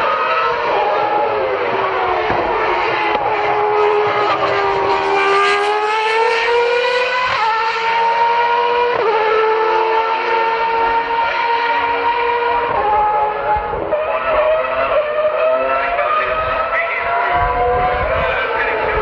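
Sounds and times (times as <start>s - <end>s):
racing car engine at high revs: 0.0s - 19.0s.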